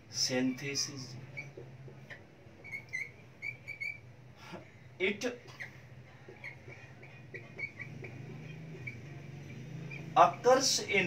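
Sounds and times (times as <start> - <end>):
marker squeaking on whiteboard: 0.1 - 4.2, 5.1 - 11.0.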